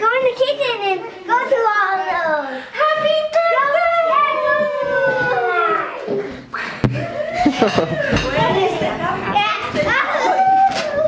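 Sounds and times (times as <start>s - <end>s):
children shrieking in play: 3.8s - 6.1s, 9.9s - 11.0s.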